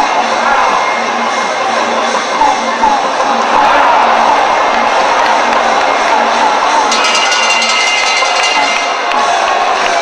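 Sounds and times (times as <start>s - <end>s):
crowd cheering: 0.0s - 10.0s
wavering melody: 6.9s - 9.2s.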